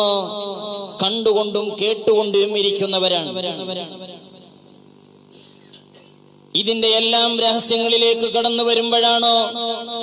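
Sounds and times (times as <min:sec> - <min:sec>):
echo of preacher's voice: 0:00.0 - 0:04.7, 0:06.5 - 0:10.0
faint sound system hum: 0:00.0 - 0:10.0.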